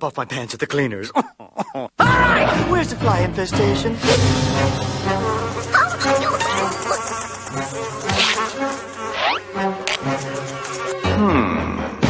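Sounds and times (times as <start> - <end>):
cartoon fly buzzing: 5.7 - 11.0.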